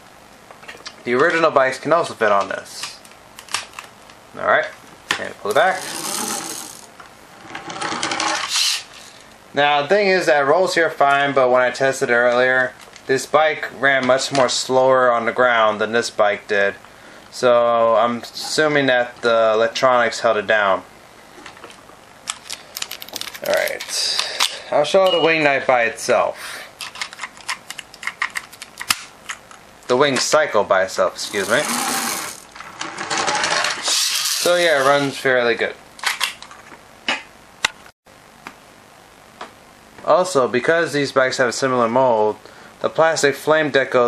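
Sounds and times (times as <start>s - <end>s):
rapid gear rattle: 5.6s - 6.9s, 31.3s - 34.6s
spring motor whirring: 5.6s - 9.2s, 31.2s - 35.0s.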